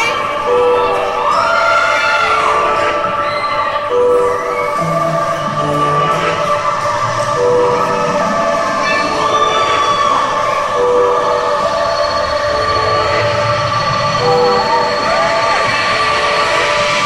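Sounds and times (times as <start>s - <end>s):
held synthesizer chords: 0.0s - 17.0s
sliding vocal notes: 0.0s - 17.0s.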